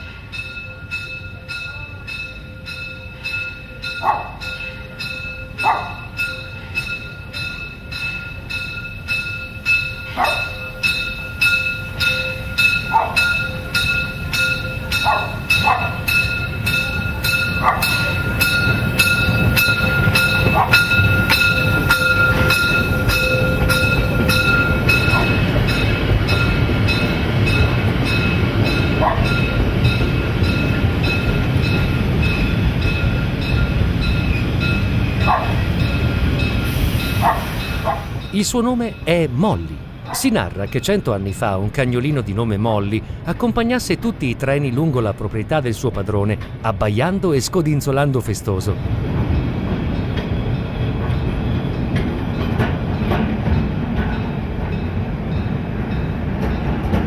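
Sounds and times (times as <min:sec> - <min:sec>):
rumble of train running gear: 0:00.0 - 0:39.0, 0:46.3 - 0:46.8, 0:48.7 - 0:57.0
locomotive warning bell ringing: 0:00.0 - 0:43.8.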